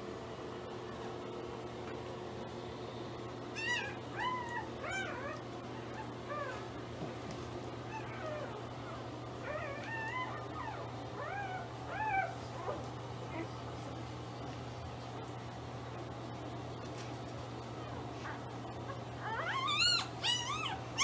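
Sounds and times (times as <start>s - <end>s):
steady low hum: 0.0s - 21.0s
puppies squeaking: 3.5s - 6.6s, 7.8s - 13.6s, 18.2s - 21.0s.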